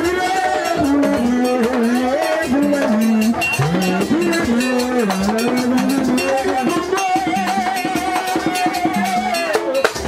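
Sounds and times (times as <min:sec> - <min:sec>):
voices singing a chant: 0:00.0 - 0:10.0.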